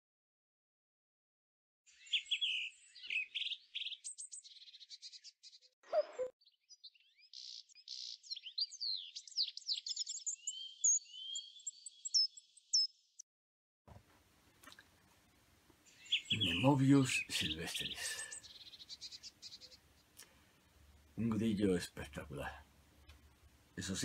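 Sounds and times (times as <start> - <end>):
lower-pitched bird call: 1.9 - 4.8, 5.9 - 6.3, 15.9 - 19.8
songbirds singing: 1.9 - 13.2, 15.8 - 24.0.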